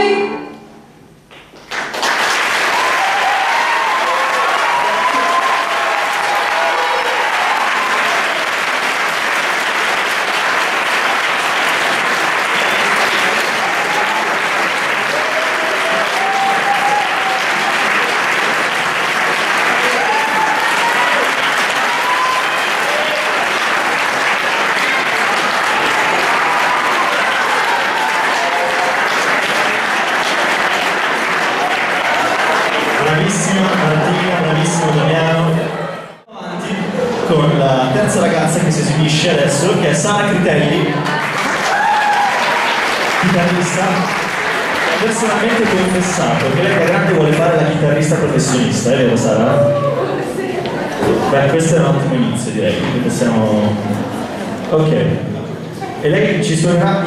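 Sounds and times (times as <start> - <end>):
audience applauding: 1.3 - 35.9, 38.2 - 51.4.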